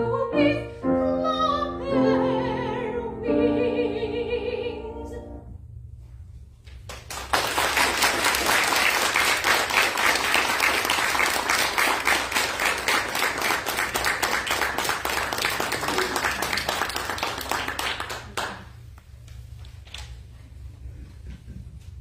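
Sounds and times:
audience applauding: 6.9s - 18.8s.

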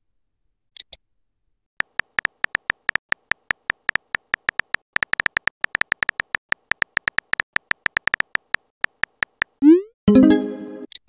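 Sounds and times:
phone keyboard typing clicks: 1.8s - 9.6s.

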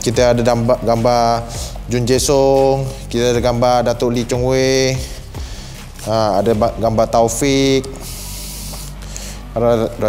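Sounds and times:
speech: 0.0s - 5.1s, 6.0s - 8.0s, 9.6s - 10.0s.

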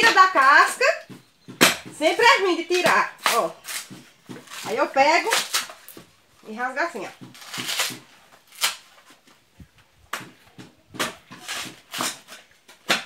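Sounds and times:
coconut husk ripping: 2.3s - 9.3s, 11.0s - 13.0s.

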